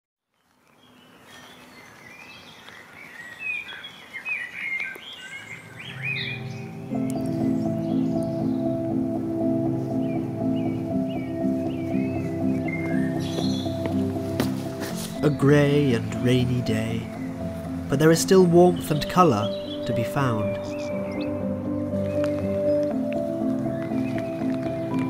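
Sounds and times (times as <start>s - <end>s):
songbirds singing: 0.3s - 25.0s
music of held chords: 5.6s - 25.0s.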